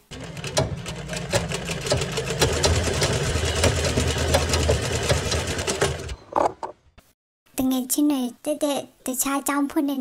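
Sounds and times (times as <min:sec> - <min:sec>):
sewing machine running: 0:00.0 - 0:06.2.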